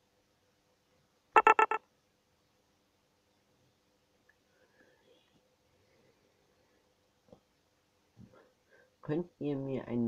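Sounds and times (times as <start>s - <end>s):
quick electronic beeps: 1.4s - 1.8s.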